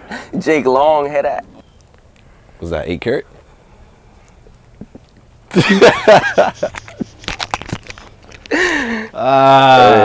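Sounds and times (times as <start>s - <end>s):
sharp clicks and crackles: 1.6s - 2.3s, 6.6s - 8.6s.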